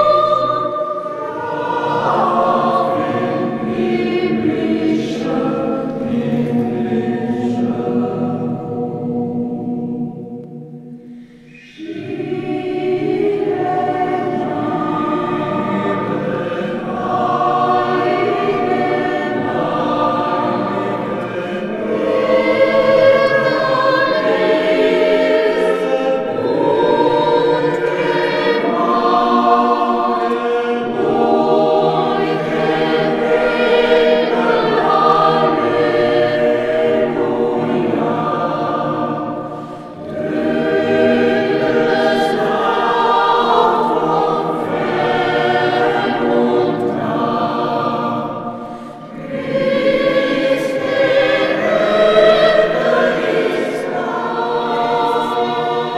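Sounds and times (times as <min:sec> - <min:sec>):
mixed choir singing: 0:00.0 - 0:55.9.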